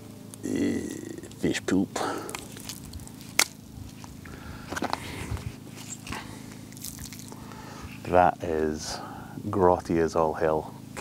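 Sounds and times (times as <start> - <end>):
wet sponges squishing: 2.3 - 3.5, 5.9 - 7.4.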